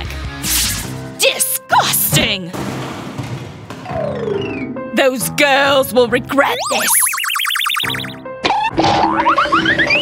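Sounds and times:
bouncy background music: 0.0 - 3.0, 3.6 - 10.0
rising whistle-like glides: 6.7 - 8.1.

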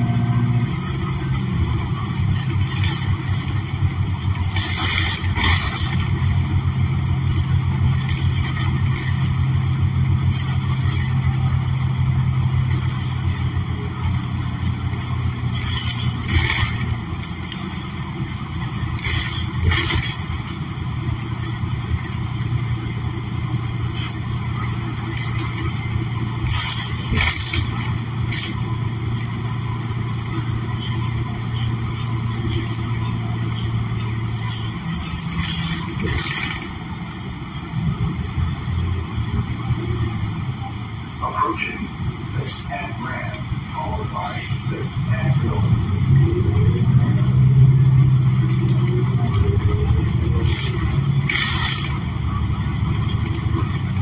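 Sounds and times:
bus engine drone: 0.0 - 54.0
road noise: 0.0 - 54.0
short clatters: 2.3 - 37.3, 48.3 - 54.0.

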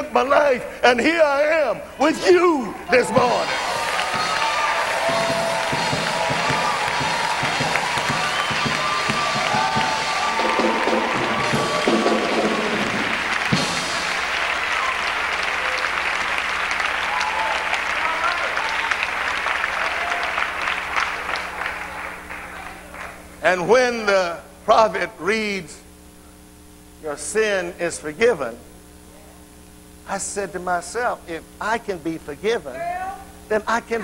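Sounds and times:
congregation applauding: 2.6 - 23.3.

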